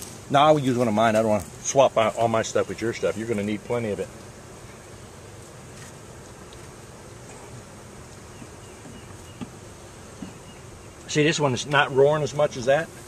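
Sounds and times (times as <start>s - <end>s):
honeybees buzzing: 0.0s - 13.0s.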